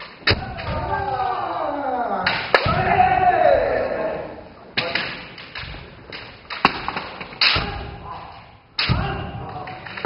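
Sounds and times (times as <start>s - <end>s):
fighters shouting: 0.3s - 4.4s, 7.5s - 10.0s
bamboo sword strikes: 6.6s - 9.7s.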